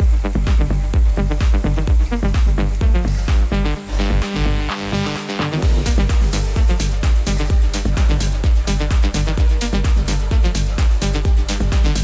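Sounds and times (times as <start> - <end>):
electronic dance music: 0.0 - 12.0.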